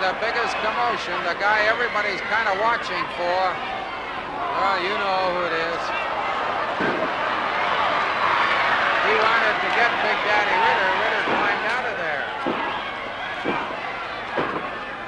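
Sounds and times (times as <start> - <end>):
crowd yelling and cheering: 0.0 - 15.0
thuds in wrestling ring: 6.8 - 7.2, 11.2 - 15.0.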